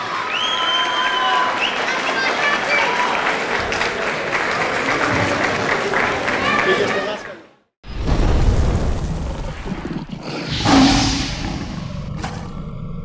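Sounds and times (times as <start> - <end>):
sharp hit: 10.4 - 12.0
deep rumbling boom: 10.4 - 12.7.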